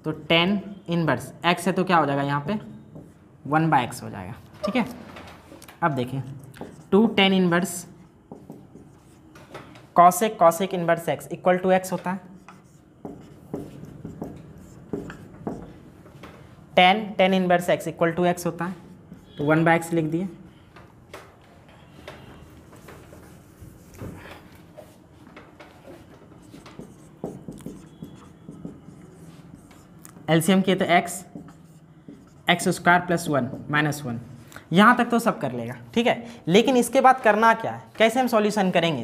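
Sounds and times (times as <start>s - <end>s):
marker writing on whiteboard: 1.6s - 39.0s.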